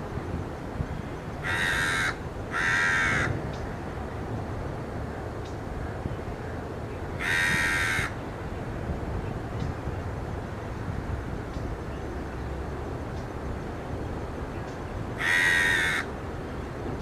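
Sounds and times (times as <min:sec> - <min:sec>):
low background noise: 0:00.0 - 0:17.0
harsh grating bird calls: 0:01.4 - 0:03.8, 0:07.1 - 0:08.2, 0:15.2 - 0:16.1.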